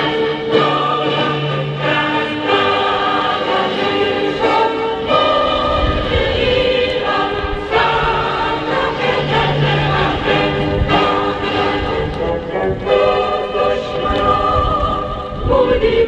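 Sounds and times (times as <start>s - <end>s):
group singing in unison: 0.0s - 16.0s.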